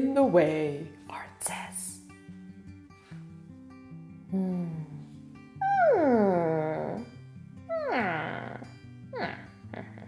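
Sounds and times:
soft background music: 0.0s - 10.0s
woman humming hmm: 4.3s - 7.1s, 7.7s - 10.0s.

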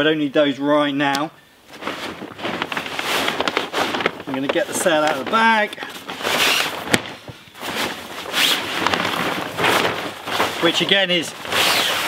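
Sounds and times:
sail rustling out of bag: 1.7s - 12.0s.

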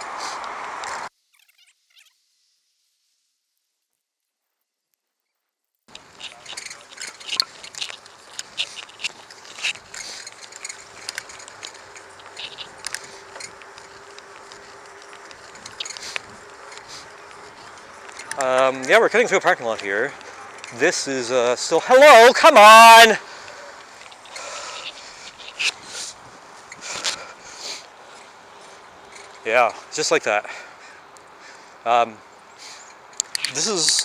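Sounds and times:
bicycle wind and road hiss: 0.0s - 1.3s, 5.9s - 34.0s
bicycle clicks and rattles: 5.9s - 21.7s, 23.3s - 31.6s, 32.7s - 34.0s.

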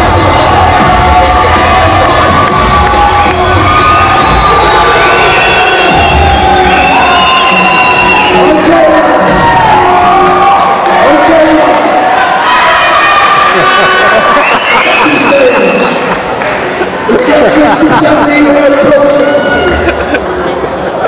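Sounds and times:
crowd cheering: 0.0s - 21.0s
loud music: 0.0s - 21.0s.

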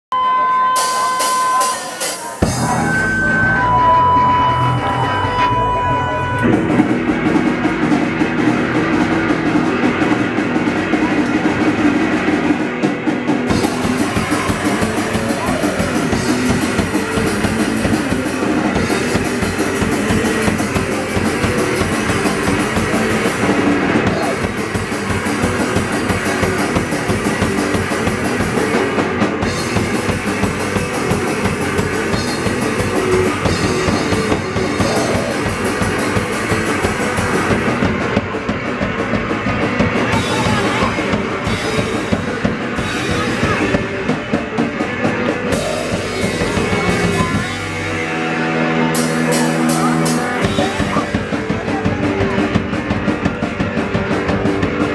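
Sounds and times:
distorted electric guitar: 0.1s - 54.9s
drum kit with cymbals: 0.1s - 54.9s.

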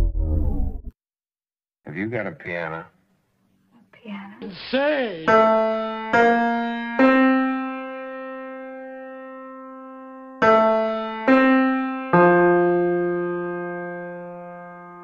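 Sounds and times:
slow piano notes: 5.2s - 15.0s.

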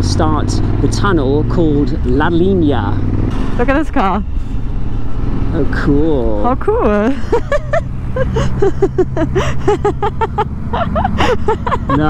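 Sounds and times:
motorcycle engine droning: 0.0s - 12.0s
people laughing: 7.1s - 12.0s.

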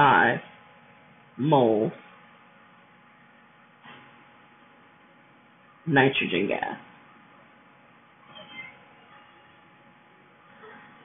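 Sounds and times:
faint high-pitched call: 8.2s - 9.7s.

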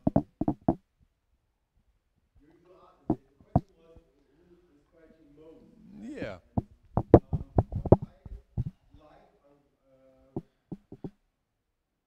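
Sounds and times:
microphone handling thumps: 0.0s - 0.8s, 6.4s - 8.8s, 10.7s - 11.2s.

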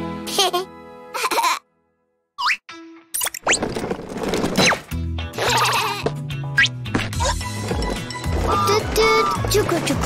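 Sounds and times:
children's music with bass: 5.1s - 10.0s.

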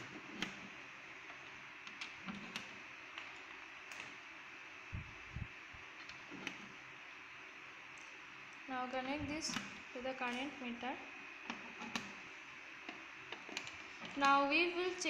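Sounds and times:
patch cords clicking into sockets: 9.0s - 10.6s, 11.4s - 12.2s, 12.8s - 15.0s.

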